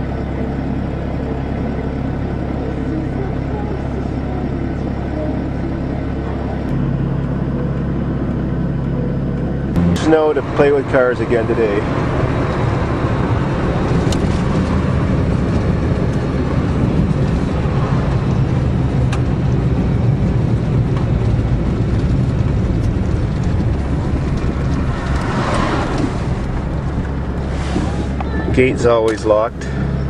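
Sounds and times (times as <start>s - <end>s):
tyre and road noise: 0.0s - 30.0s
van engine drone: 0.0s - 30.0s.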